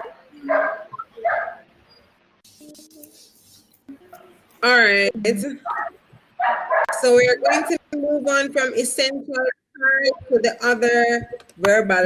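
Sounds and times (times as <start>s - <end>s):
dog barking: 0.0s - 1.7s, 5.7s - 7.6s.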